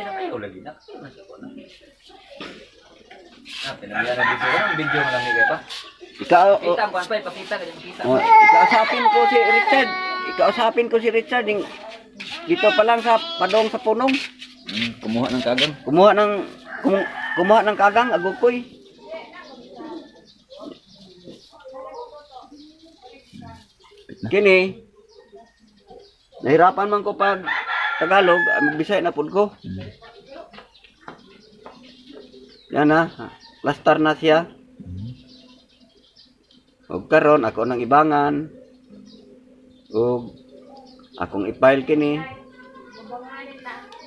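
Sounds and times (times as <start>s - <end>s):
rooster crowing: 3.8s - 5.8s, 15.5s - 18.8s, 27.3s - 29.1s.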